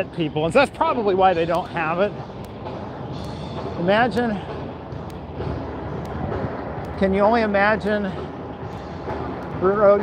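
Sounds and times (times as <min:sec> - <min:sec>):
rumble of vehicles: 0:00.0 - 0:10.0
light ticks: 0:06.8 - 0:08.0.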